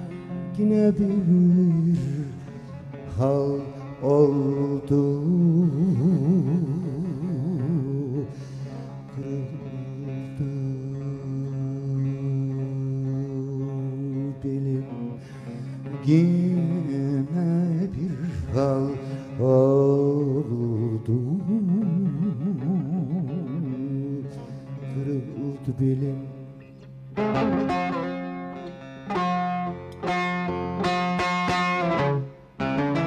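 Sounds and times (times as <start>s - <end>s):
man singing with vibrato: 0.0s - 26.6s
plucked strings: 0.0s - 33.0s.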